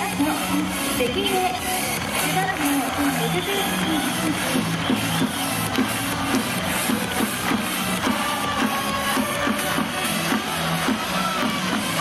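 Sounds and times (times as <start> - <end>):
electronic music over loudspeakers: 0.0 - 12.0.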